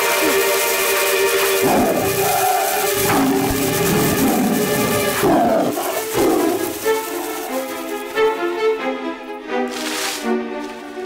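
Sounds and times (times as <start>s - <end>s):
background music: 0.0s - 11.0s
cartoon tiger roaring and snarling: 1.6s - 7.2s.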